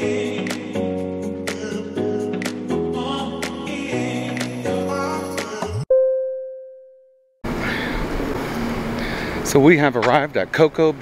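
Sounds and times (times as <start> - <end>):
street traffic rumble: 7.5 - 11.0.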